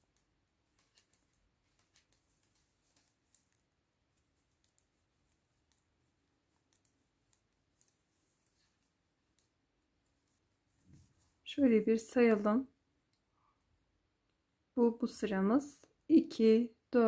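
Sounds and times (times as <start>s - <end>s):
knitting needles clicking: 0.0s - 10.4s.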